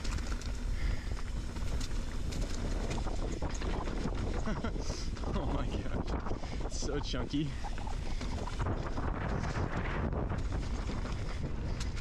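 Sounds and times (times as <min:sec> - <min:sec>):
bike rattling over bumps: 0:00.0 - 0:12.0
wind buffeting microphone: 0:00.0 - 0:12.0.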